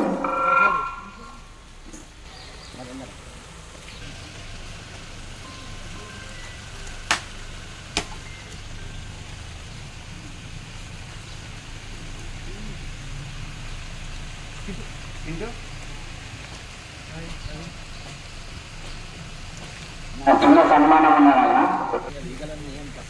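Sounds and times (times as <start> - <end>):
faint voices: 20.1 - 23.0.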